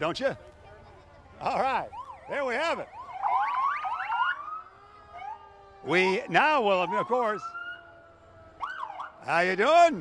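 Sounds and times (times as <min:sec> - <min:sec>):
emergency vehicle sirens: 0:00.0 - 0:10.0.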